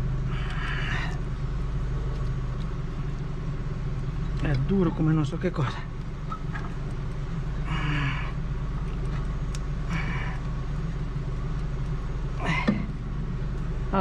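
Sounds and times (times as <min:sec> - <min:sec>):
engine idling hum: 0:00.0 - 0:14.0.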